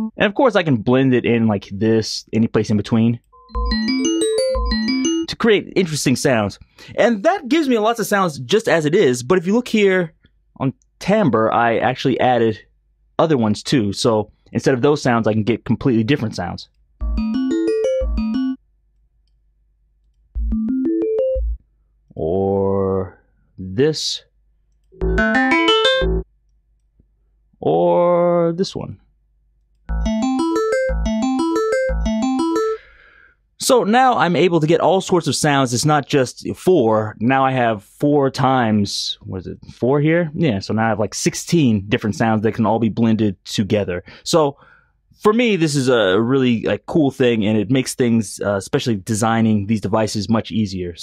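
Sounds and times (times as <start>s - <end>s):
electric piano rising arpeggio: 3.4s - 5.3s, 17.0s - 18.6s, 20.5s - 21.5s, 25.0s - 26.2s, 29.9s - 32.8s.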